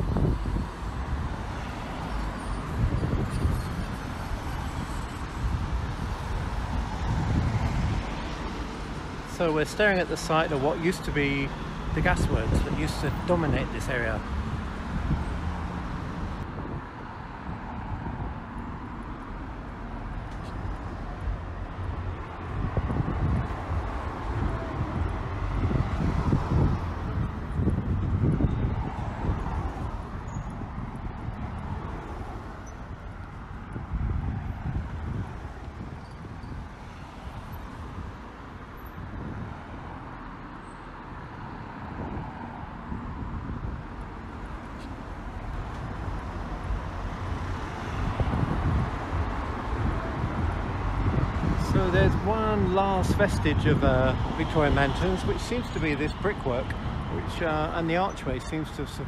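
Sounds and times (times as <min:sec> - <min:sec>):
cars passing by: 0:00.0 - 0:59.0.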